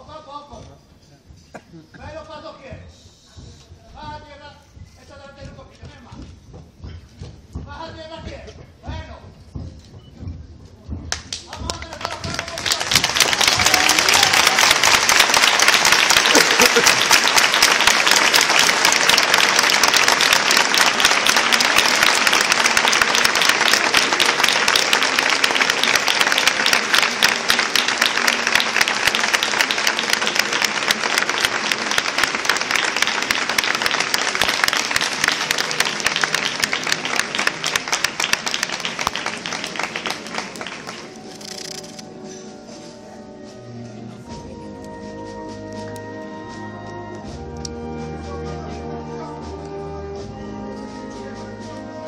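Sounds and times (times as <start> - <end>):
large crowd applauding: 11.1 - 42.0.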